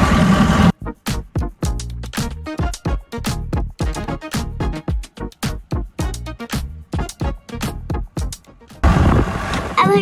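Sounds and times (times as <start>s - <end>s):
wind noise: 8.8s - 9.8s.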